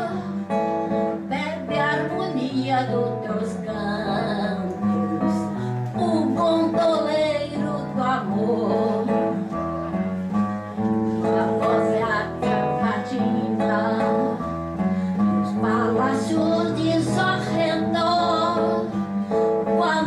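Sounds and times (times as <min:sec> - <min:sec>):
woman singing into a microphone: 0:00.0 - 0:09.6, 0:11.0 - 0:20.0
strummed acoustic guitar: 0:00.0 - 0:20.0.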